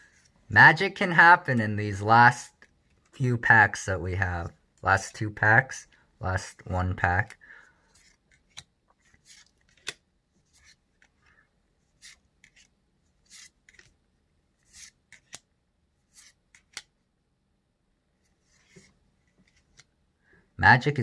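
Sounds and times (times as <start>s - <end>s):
trading cards swishing and snapping: 7.8s - 14.0s, 14.6s - 15.5s, 16.1s - 16.9s, 18.4s - 19.9s.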